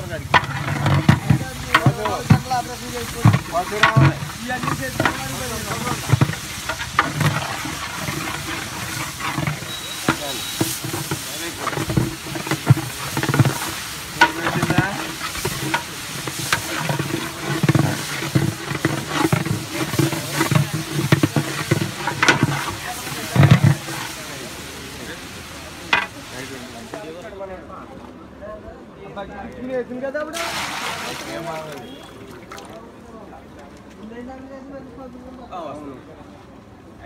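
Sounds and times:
scoop scraping and sloshing in pot: 0:00.0 - 0:24.5.

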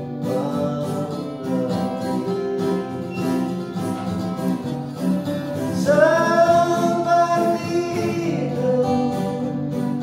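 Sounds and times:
man singing: 0:00.0 - 0:03.5, 0:05.4 - 0:10.0
acoustic guitars playing: 0:00.0 - 0:10.0.

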